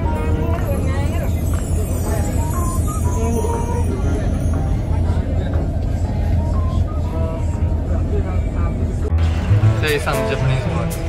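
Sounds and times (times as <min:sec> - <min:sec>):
faint voices chatting: 0:00.0 - 0:09.2.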